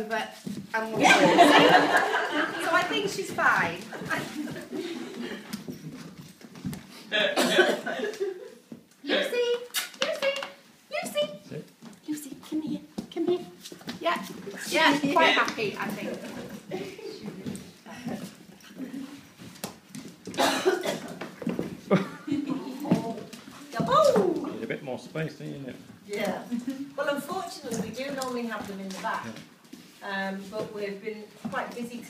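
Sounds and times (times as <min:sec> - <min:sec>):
puppy claws scrabbling on floor: 0:05.4 - 0:07.0, 0:27.3 - 0:29.8.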